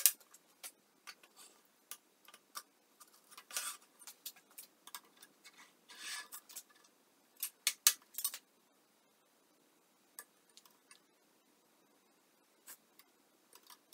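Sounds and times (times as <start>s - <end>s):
metal rail scraping: 5.5s - 6.6s.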